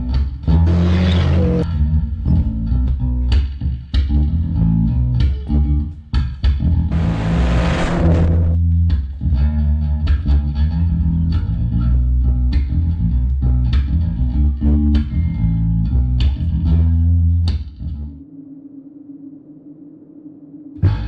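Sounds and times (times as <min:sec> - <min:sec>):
electric bass riff: 0:00.0 - 0:05.8, 0:06.6 - 0:18.2
rush of noise: 0:06.9 - 0:08.7.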